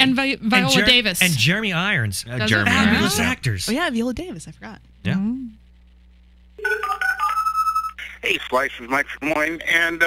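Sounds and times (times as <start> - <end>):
electronic ringtone melody: 6.6 - 7.9.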